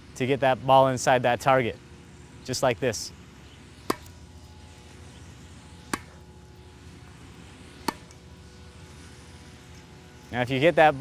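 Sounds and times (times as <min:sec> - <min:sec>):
tennis racket hitting ball: 0:03.8 - 0:04.2, 0:05.8 - 0:06.2, 0:07.8 - 0:08.2.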